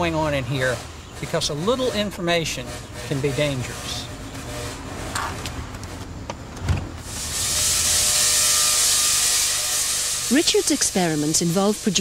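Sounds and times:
tesla coil arcs hissing: 7.0s - 12.0s.

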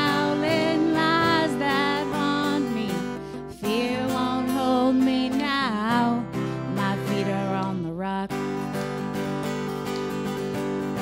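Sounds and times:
person singing: 0.0s - 8.8s
acoustic guitar strumming: 0.0s - 11.0s.

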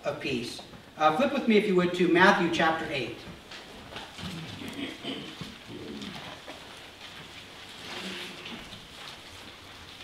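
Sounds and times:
thin pages rustling: 3.4s - 10.0s.

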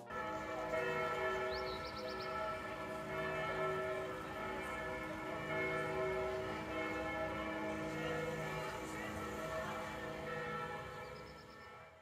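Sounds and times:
church bells pealing: 0.0s - 12.0s.

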